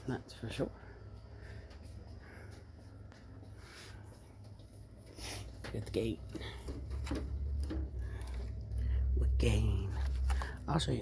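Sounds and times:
steady low rumble: 5.9 - 11.0.

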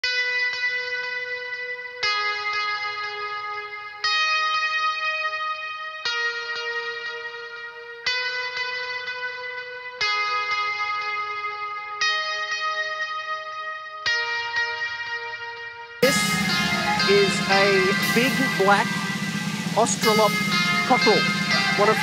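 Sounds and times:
ringing guitar chords: 0.0 - 22.0
picked guitar notes: 0.2 - 22.0.

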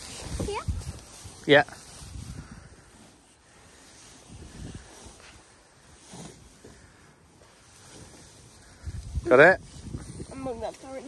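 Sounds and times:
wind rumble on microphone: 0.0 - 2.9, 4.2 - 5.3, 8.6 - 11.0
hay rustling: 0.0 - 11.0.

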